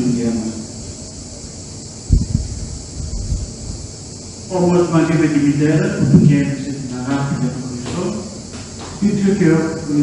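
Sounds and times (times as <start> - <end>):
steady hiss: 0.0 - 10.0
low thumps on microphone: 5.9 - 9.0.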